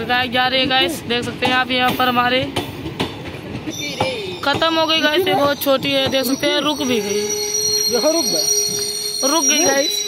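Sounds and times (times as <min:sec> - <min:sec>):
train brakes squealing: 0:03.7 - 0:10.0.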